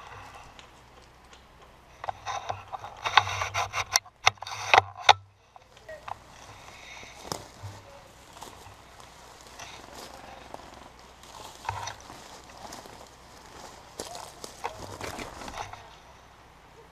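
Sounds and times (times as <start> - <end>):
leaves and twigs rustling: 0.0 - 16.9.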